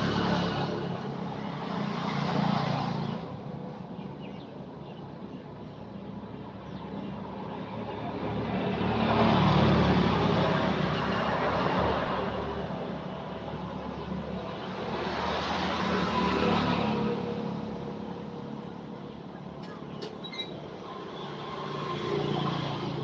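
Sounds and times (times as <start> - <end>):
road vehicles passing: 0.0 - 23.0.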